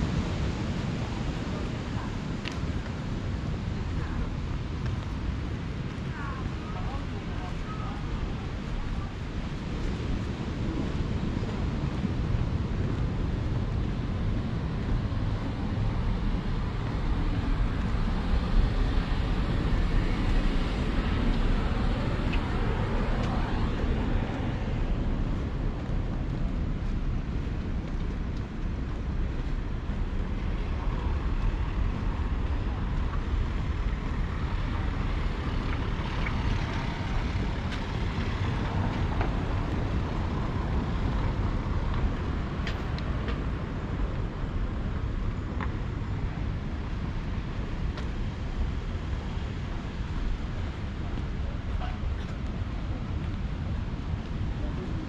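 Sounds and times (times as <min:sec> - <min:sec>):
distant road traffic rumble: 0:00.0 - 0:55.0.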